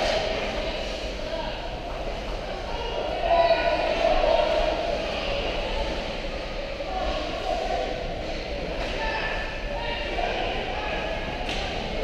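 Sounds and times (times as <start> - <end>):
distant shouting voices: 2.4 - 12.0.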